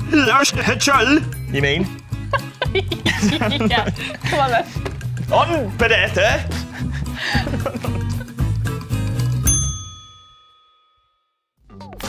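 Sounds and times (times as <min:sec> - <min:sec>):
bell-like ding: 0:09.4 - 0:11.5.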